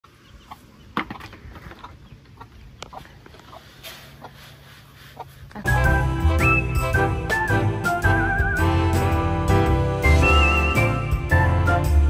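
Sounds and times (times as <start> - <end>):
chickens clucking: 0.0 - 5.8
loud music: 5.7 - 12.0.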